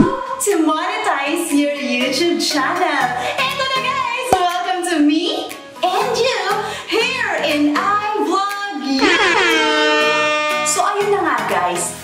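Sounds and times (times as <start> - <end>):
air horn blast: 9.0 - 11.1.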